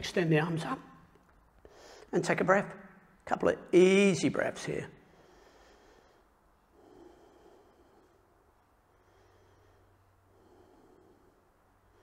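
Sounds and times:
person breathing softly: 1.6 - 2.2, 5.0 - 12.0.

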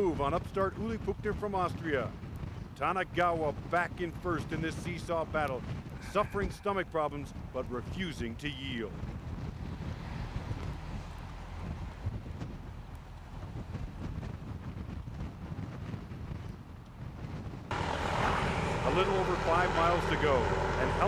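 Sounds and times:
vehicle engine rumble: 3.5 - 21.0.

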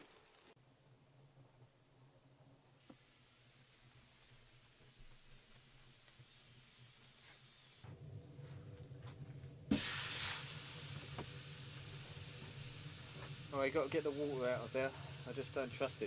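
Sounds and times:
water sizzling on hot metal: 0.0 - 0.6, 2.8 - 7.8, 9.7 - 16.0.

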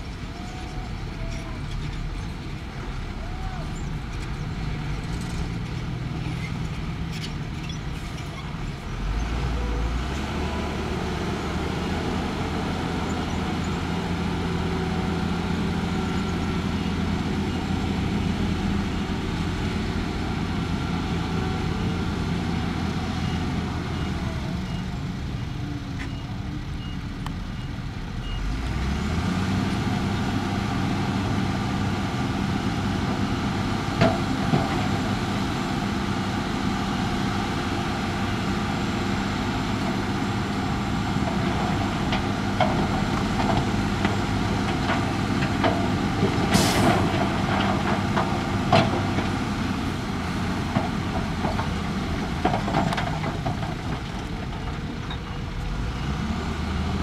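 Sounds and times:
diesel truck engine running: 0.0 - 57.0.

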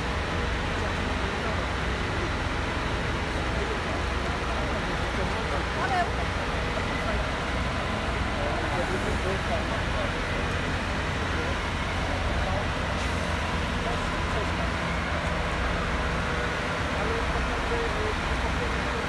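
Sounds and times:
fire engines idling: 0.0 - 19.0
people talking: 0.0 - 19.0.

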